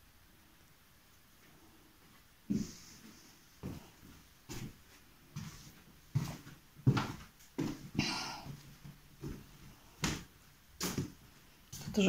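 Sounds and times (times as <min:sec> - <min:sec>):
footsteps on bare floor: 0:01.4 - 0:12.0.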